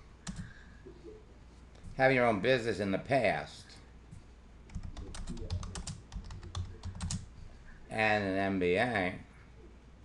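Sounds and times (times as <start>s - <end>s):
typing on computer keyboard: 0.2s - 0.5s, 4.7s - 7.3s.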